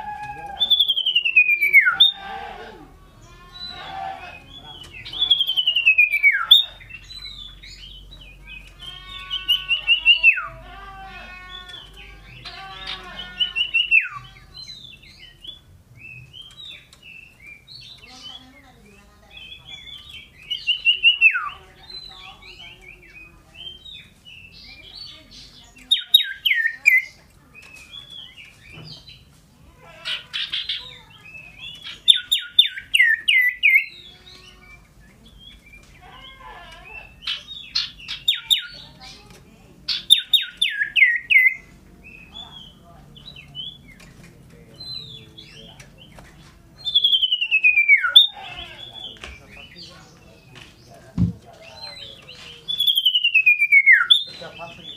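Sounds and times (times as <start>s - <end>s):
bird singing: 0.0s - 54.9s.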